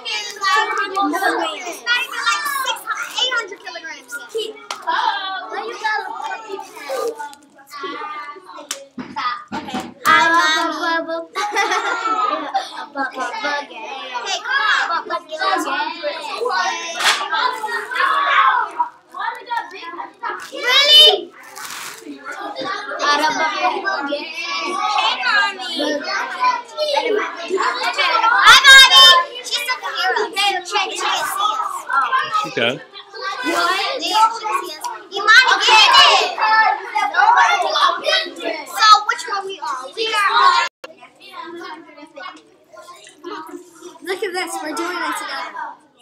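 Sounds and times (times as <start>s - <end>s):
children talking: 0.0s - 46.0s.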